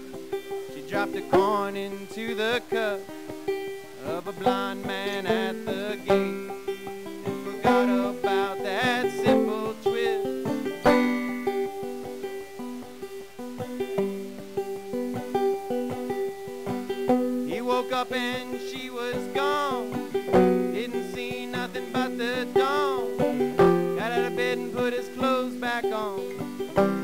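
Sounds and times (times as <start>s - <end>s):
picked acoustic string instrument: 0.0s - 27.0s.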